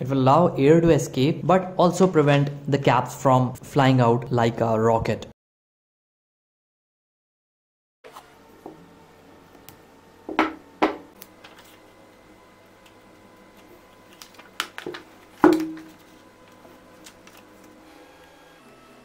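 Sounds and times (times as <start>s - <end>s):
knock on hard tabletop: 10.3s - 11.1s.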